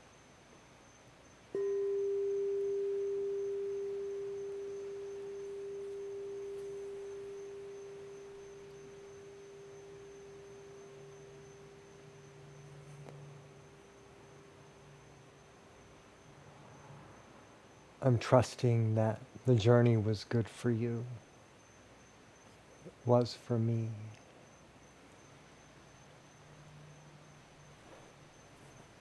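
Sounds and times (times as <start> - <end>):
singing bowl struck with mallet: 1.6 - 13.6.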